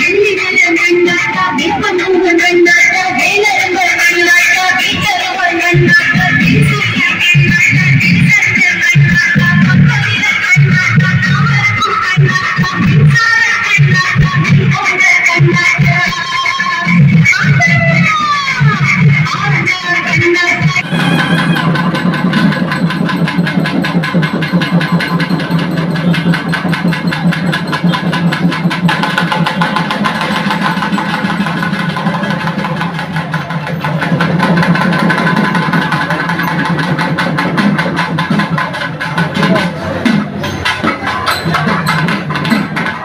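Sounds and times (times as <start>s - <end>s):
large crowd noise: 0.0s - 43.0s
percussion band drumming: 0.0s - 43.0s.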